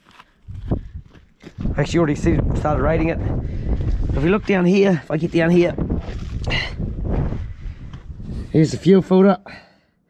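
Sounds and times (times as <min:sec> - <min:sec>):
wind buffeting microphone: 0:00.5 - 0:08.7.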